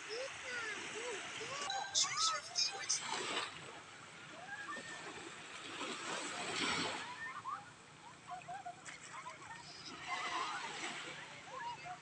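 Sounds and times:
small waves washing on sand: 0.0 - 7.5, 8.2 - 12.0.

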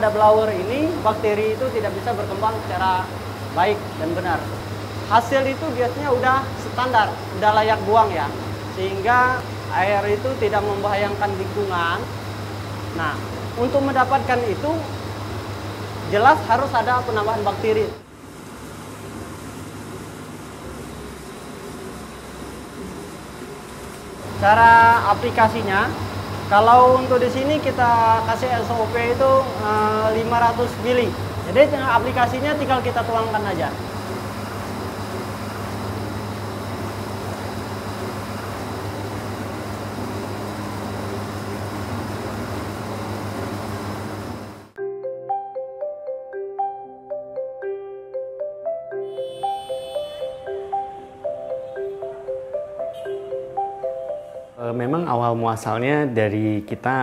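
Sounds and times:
aeration tank churning and bubbling: 0.0 - 44.8
low machine hum: 0.0 - 44.8
mallet percussion music: 24.4 - 34.5, 44.8 - 55.2.

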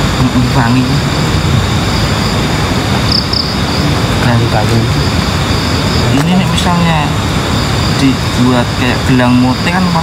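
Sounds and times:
night insects droning: 0.0 - 10.0
rushing noise: 0.0 - 10.0.

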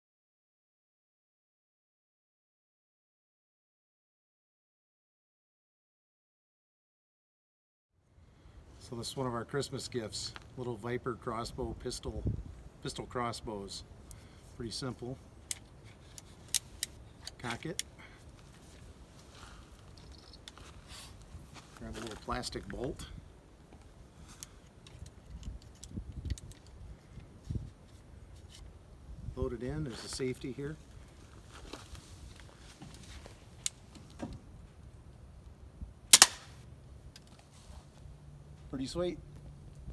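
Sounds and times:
sharp crossbow clicks: 36.1 - 36.6.

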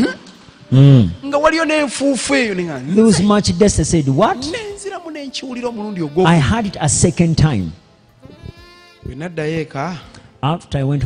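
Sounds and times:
faint drawn-out vocal sound: 0.7 - 1.2.

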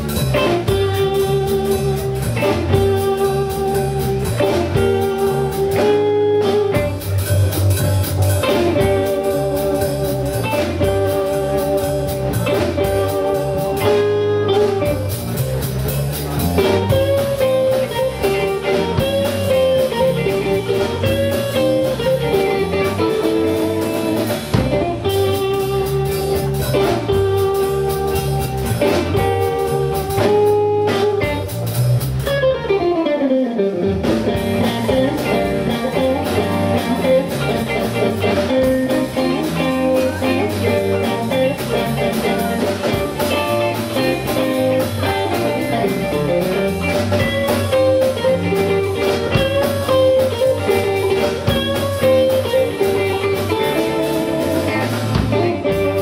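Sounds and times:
bass guitar: 0.0 - 56.0
drum kit: 0.0 - 56.0
electric guitars: 0.0 - 56.0.

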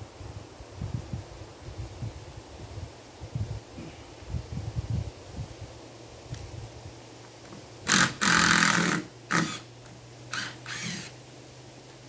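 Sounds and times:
power drill into wood: 7.8 - 9.7, 10.3 - 11.2.

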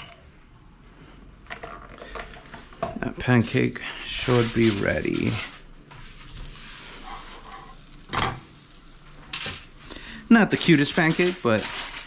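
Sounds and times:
handling clatters and rustles: 10.5 - 12.0.

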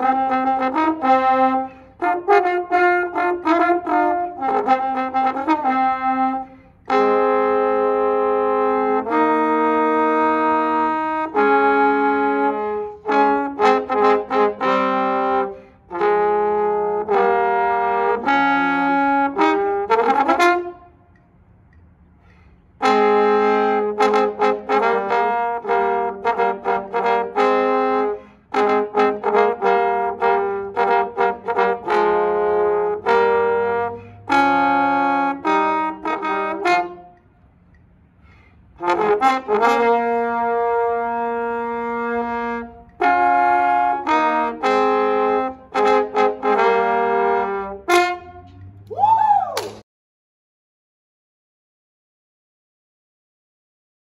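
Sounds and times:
trombone duet: 0.0 - 21.3, 22.6 - 37.7, 38.6 - 48.8.

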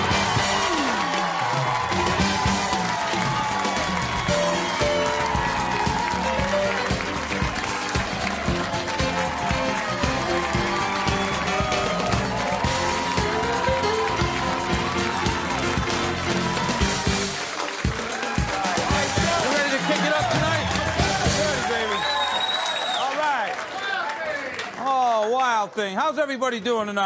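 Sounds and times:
steady drum beat: 0.0 - 22.0
live band playing upbeat music: 0.0 - 22.1
audience applause: 0.0 - 25.9.

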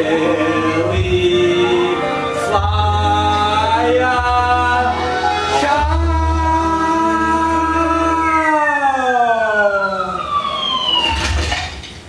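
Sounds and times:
singer holding a long note: 0.0 - 10.2.

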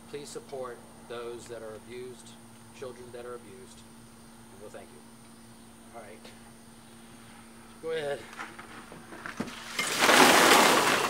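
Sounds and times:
water pouring and splashing: 9.5 - 11.0.

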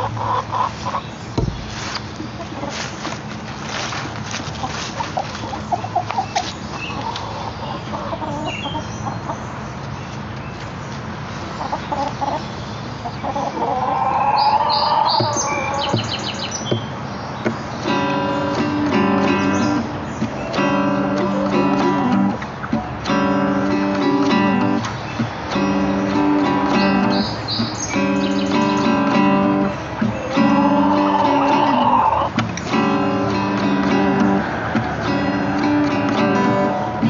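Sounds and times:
hens squawking: 0.0 - 3.0, 4.6 - 9.4, 13.0 - 16.2, 28.0 - 33.2
hens clucking: 0.0 - 3.5, 4.3 - 10.2, 11.4 - 16.2, 17.8 - 37.0
acoustic guitar strumming chords: 17.8 - 37.0.

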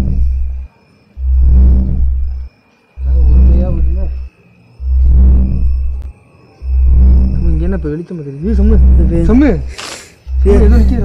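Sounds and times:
deep electronic pulse: 0.0 - 9.7, 10.3 - 11.0
faint high whine: 0.0 - 11.0.

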